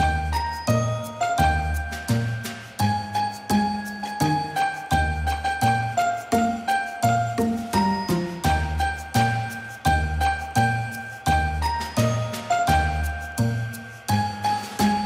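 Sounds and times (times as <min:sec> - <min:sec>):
bell-like chiming melody: 0:00.0 - 0:15.0.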